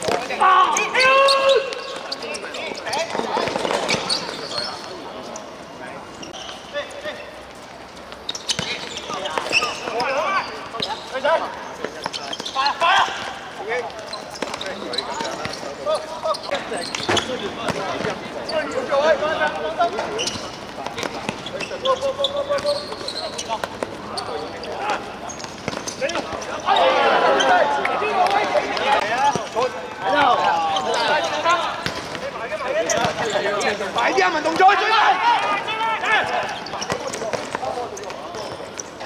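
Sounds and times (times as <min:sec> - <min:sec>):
players shouting: 0:00.0 - 0:04.2, 0:26.1 - 0:37.2.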